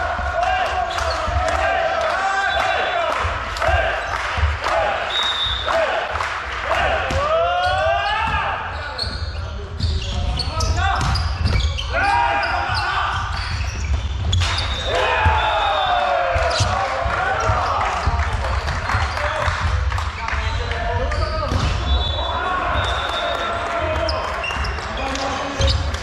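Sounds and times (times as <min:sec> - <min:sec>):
players shouting: 0:00.0 - 0:08.8, 0:11.8 - 0:13.5, 0:14.4 - 0:18.3.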